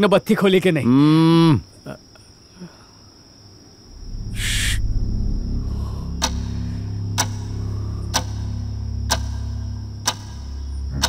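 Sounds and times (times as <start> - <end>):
low sustained musical drone: 3.9 - 11.0
brief hiss: 4.3 - 4.8
clock-like ticks: 6.2 - 11.0.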